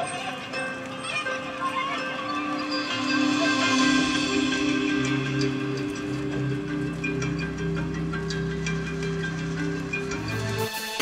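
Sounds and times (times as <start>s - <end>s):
slow held low notes: 2.4s - 10.6s.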